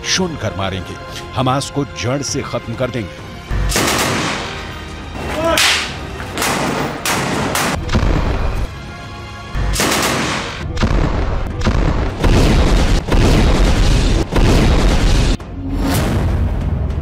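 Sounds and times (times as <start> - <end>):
gunshots: 3.7 - 4.5, 9.7 - 15.4
explosions with deep thuds: 9.8 - 17.0.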